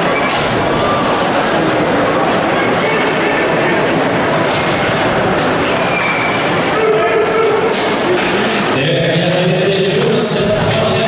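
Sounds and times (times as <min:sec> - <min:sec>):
crowd din in arena: 0:00.0 - 0:11.0.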